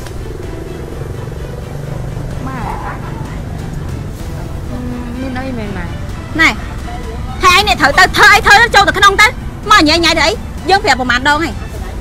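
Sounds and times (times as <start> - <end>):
background music: 0.0 - 12.0
vehicle engine rumbling: 0.0 - 12.0
wavering vocal sound: 4.6 - 5.4.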